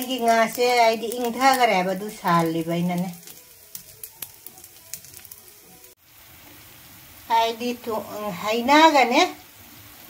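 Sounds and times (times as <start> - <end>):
sharp oil crackles: 0.0 - 8.0
fish frying in sizzling oil: 0.0 - 10.0.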